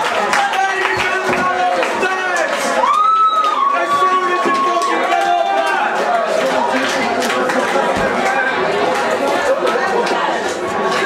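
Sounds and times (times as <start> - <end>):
crowd talking and shouting: 0.0 - 11.0.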